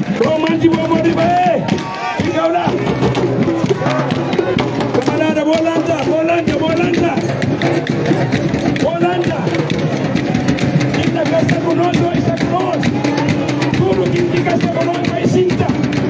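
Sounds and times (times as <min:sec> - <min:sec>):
man singing through loudspeaker: 0:00.0 - 0:02.8, 0:10.9 - 0:16.0
quick steady drumming: 0:00.0 - 0:16.0.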